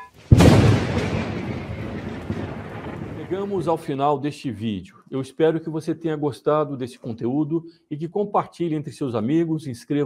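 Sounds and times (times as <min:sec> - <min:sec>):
rumbling thunder-like boom: 0:00.3 - 0:03.8.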